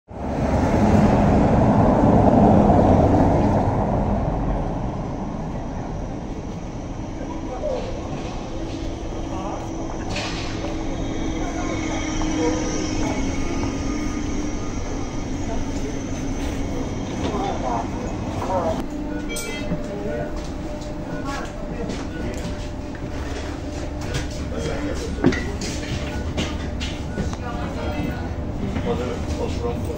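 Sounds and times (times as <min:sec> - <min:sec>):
electric bus driving over cobblestones: 0:00.1 - 0:29.9
street noise: 0:00.1 - 0:29.9.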